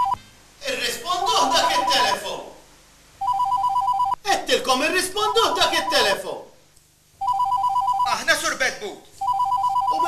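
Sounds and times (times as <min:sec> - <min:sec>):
electronic telephone ringer warbling: 0:03.2 - 0:04.2, 0:07.2 - 0:08.1, 0:09.2 - 0:10.0.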